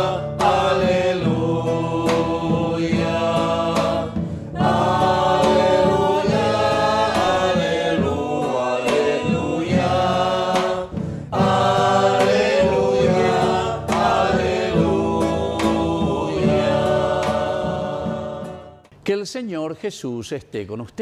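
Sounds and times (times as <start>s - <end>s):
drum struck with sticks: 0.0s - 18.8s
choir singing a hymn: 0.0s - 18.9s
acoustic guitar: 0.0s - 19.0s.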